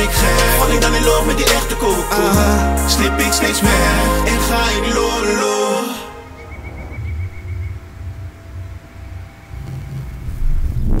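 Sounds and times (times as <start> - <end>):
faint pulsing tone: 6.2 - 11.0
low uneven rumble: 6.2 - 11.0.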